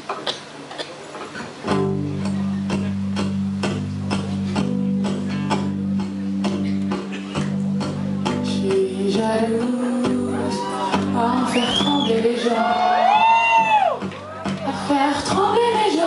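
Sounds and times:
acoustic guitar strumming: 1.6s - 12.6s.

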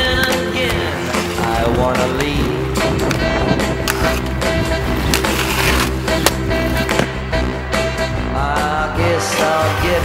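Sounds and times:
inline skates grinding on concrete: 0.0s - 7.4s
rock music: 0.0s - 10.0s
skate landing clacks: 3.0s - 7.2s.

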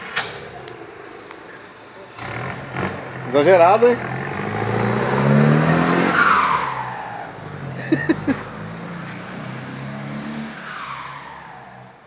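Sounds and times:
diesel engine revving: 0.0s - 11.7s.

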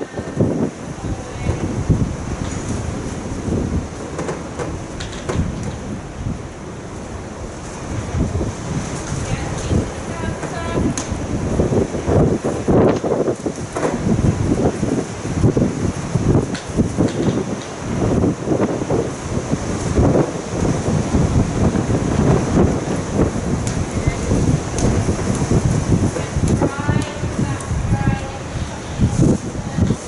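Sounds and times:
wind buffeting microphone: 0.0s - 30.0s
horse hooves thudding on sand: 7.5s - 30.0s.

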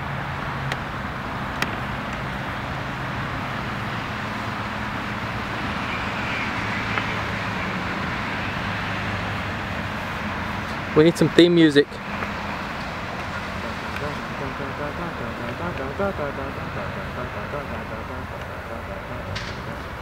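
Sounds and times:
road traffic hum: 0.0s - 20.0s.

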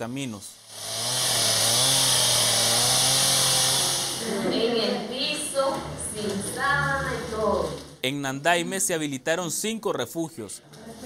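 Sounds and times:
chainsaw cutting wood: 0.6s - 4.3s.

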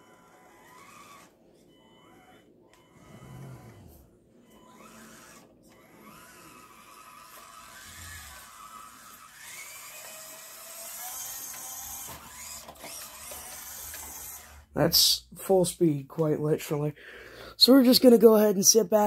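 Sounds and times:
electric motor whining: 0.0s - 14.7s.

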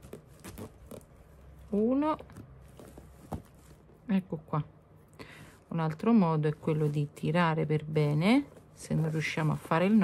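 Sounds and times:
fabric and thread handling: 0.0s - 4.6s, 5.4s - 10.0s.

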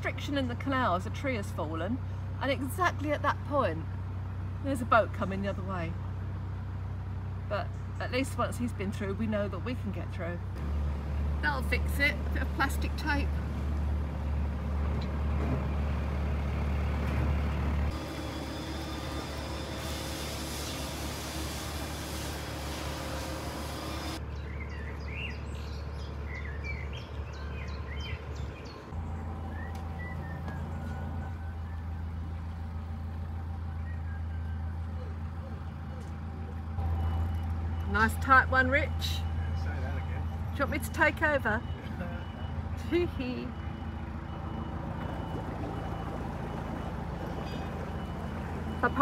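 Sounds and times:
diesel engine running: 0.0s - 49.0s.

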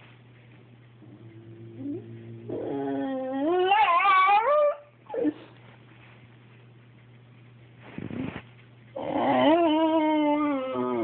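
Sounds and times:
dog whining: 1.1s - 5.6s, 9.0s - 11.0s.

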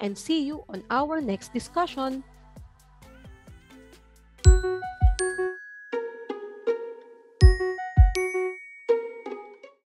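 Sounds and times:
ringing chime notes: 4.5s - 9.6s
plucked chord: 4.5s - 9.8s.

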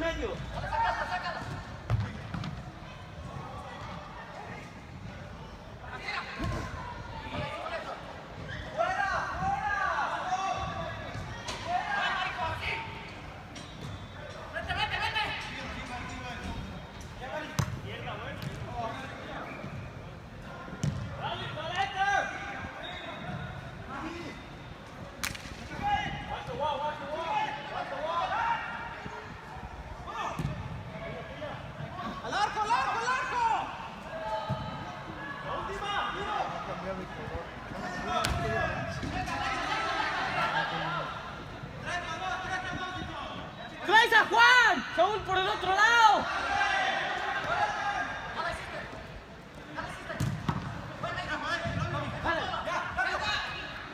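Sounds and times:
people shouting in a hall: 5.8s - 13.0s, 25.7s - 36.8s, 37.8s - 48.9s
ball being kicked: 50.2s - 50.7s.

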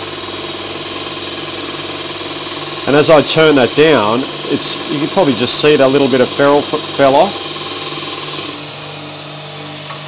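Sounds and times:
belt sander grinding hiss: 0.0s - 10.0s
sander motor humming: 0.0s - 10.0s.

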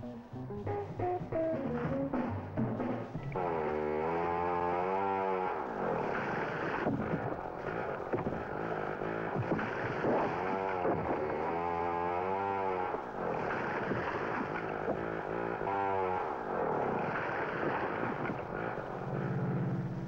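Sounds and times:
chainsaw cutting wood: 2.8s - 20.0s.

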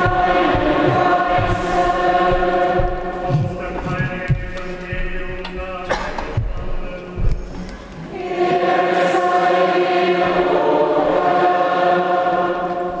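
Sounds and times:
congregation singing a hymn: 0.0s - 13.0s.

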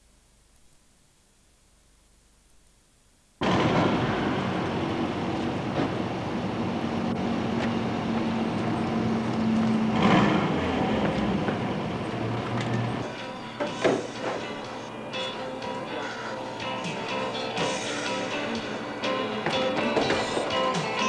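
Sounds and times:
loud rumbling with low drone: 3.4s - 13.0s.

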